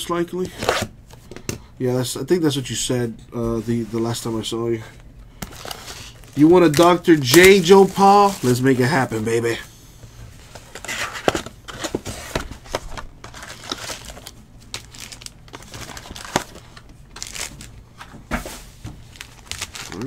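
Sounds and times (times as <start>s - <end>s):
plastic shrink-wrap crinkling and tearing: 5.4s - 8.9s, 12.6s - 17.8s, 19.0s - 20.0s
cardboard and card packs clicking: 10.5s - 17.7s, 19.1s - 20.0s.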